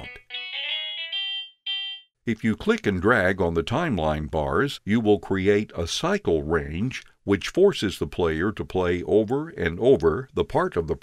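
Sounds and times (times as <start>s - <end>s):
clean electric guitar melody: 0.0s - 2.0s.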